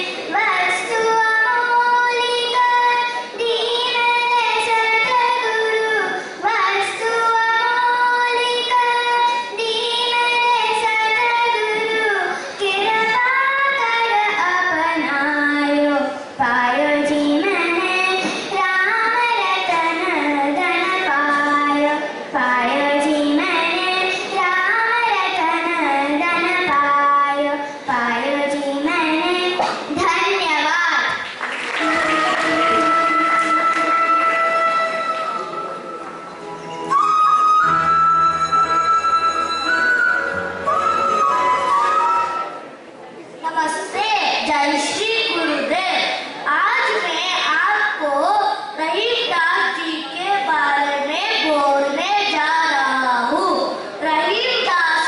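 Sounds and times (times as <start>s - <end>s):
girl singing into microphone: 0.0s - 31.2s, 43.6s - 55.0s.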